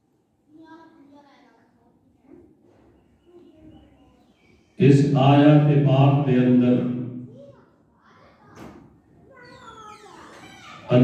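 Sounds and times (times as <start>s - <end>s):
faint high-pitched cry: 9.3s - 10.9s.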